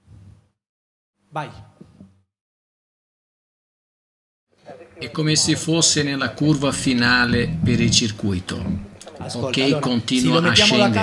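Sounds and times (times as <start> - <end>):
man speaking: 4.7 - 11.0.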